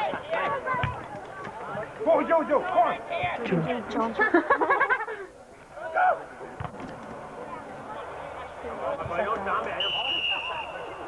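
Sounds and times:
low crowd chatter: 0:00.0 - 0:11.0
crowd shout: 0:05.7 - 0:06.4
referee's whistle blast: 0:09.8 - 0:11.0.

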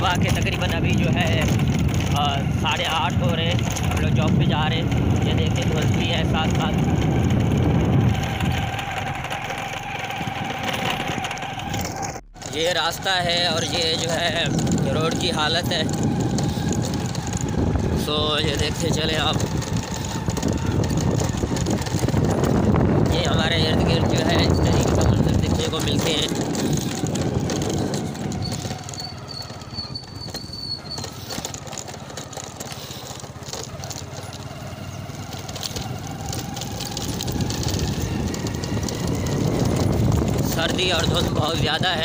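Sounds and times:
motorcycle engine rumble: 0:00.0 - 0:42.0
wind buffeting microphone: 0:00.0 - 0:42.0.

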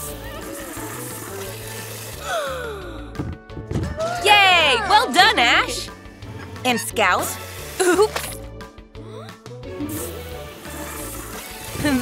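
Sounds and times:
cartoon water jet hissing: 0:00.0 - 0:02.3, 0:06.7 - 0:08.3, 0:09.8 - 0:12.0
background music: 0:00.0 - 0:12.0.

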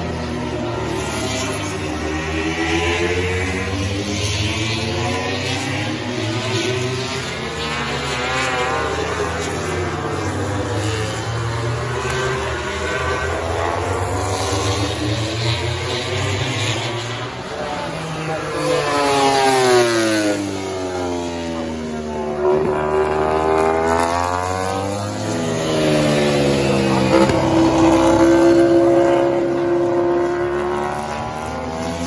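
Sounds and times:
racing motorcycles passing: 0:00.0 - 0:32.0.

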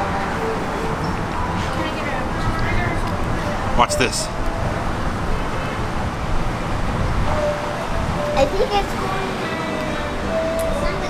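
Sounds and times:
road traffic rumble: 0:00.0 - 0:11.0.

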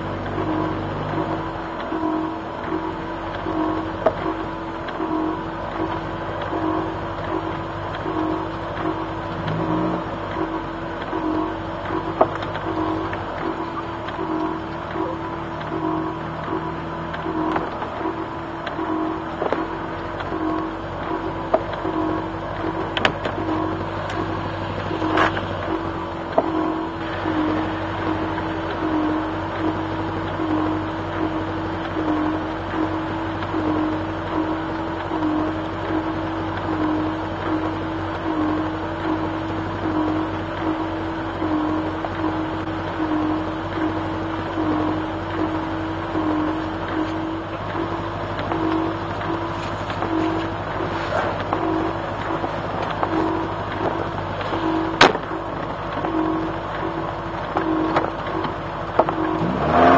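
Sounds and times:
car engine idling: 0:00.0 - 0:59.9.

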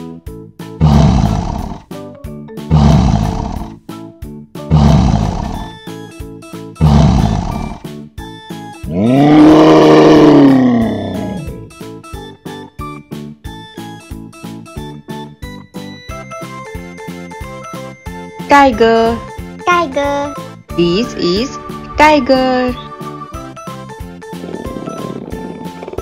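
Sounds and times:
background music: 0:00.0 - 0:26.0
lion roaring: 0:00.8 - 0:01.8, 0:02.7 - 0:03.8, 0:04.7 - 0:05.8, 0:06.8 - 0:07.8, 0:08.9 - 0:11.7.

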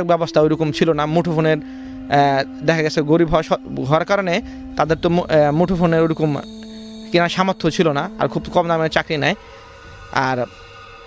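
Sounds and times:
man talking: 0:00.0 - 0:09.4, 0:10.2 - 0:10.5
steady hum of held tones: 0:00.0 - 0:11.0.

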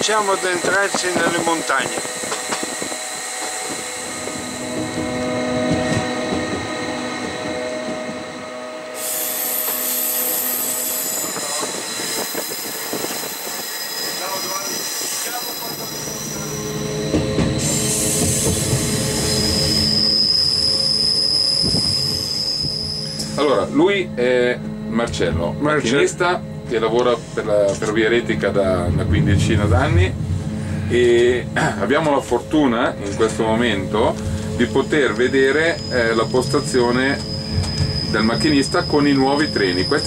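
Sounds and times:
train running: 0:00.0 - 0:40.0
high-pitched wheel squeal: 0:02.8 - 0:23.6, 0:34.6 - 0:40.0.

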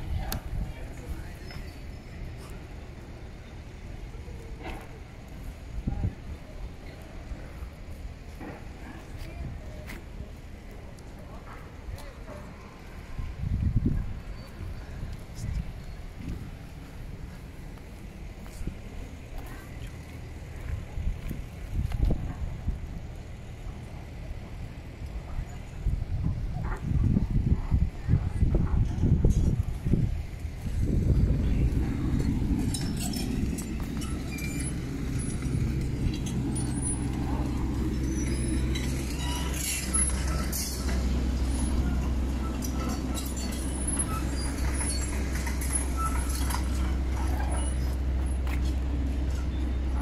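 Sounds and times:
faint distant voices: 0:00.0 - 0:50.0
low outdoor rumble: 0:00.0 - 0:50.0
wind buffeting microphone: 0:00.0 - 0:50.0.

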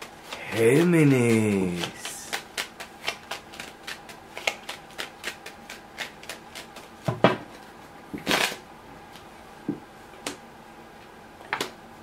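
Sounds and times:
playing cards rustling: 0:00.0 - 0:07.0.

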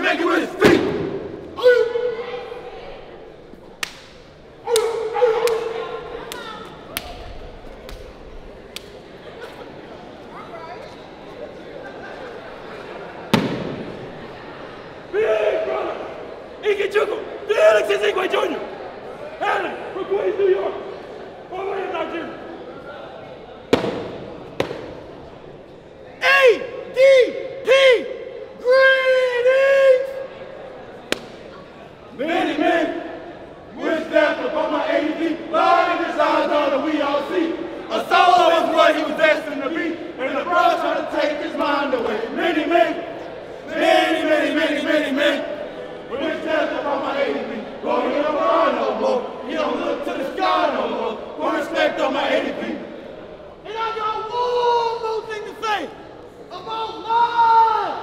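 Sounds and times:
crowd voices: 0:00.0 - 0:58.0
young men chanting in unison: 0:32.2 - 0:53.0.

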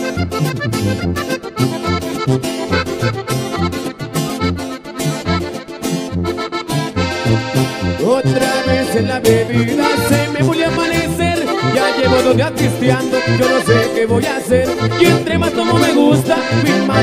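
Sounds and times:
button accordion melody: 0:00.0 - 0:17.0
strummed guitar: 0:00.0 - 0:17.0
tuba bass notes: 0:00.0 - 0:17.0.

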